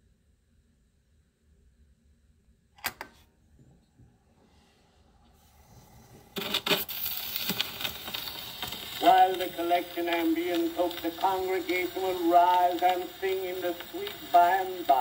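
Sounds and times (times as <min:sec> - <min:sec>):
record surface crackle: 0:06.3 - 0:15.0
needle clicks on record: 0:06.4 - 0:15.0.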